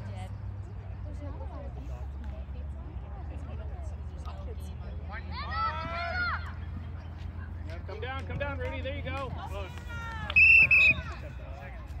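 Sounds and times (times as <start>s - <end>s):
referee's whistle blasts: 10.4s - 11.0s.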